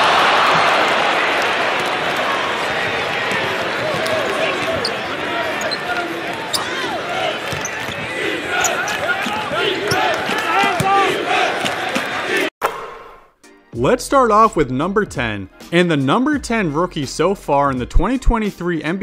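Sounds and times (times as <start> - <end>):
crowd talking and calling: 0.0 - 12.5.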